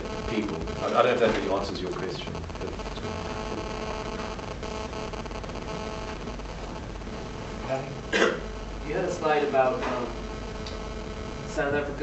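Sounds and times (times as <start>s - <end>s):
electrical and ventilation hum: 0.0s - 12.0s
person clearing throat: 8.1s - 8.4s.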